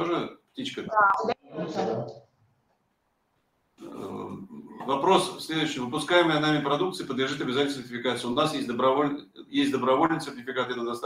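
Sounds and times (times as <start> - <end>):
man's low voice hesitating: 3.8 - 4.9.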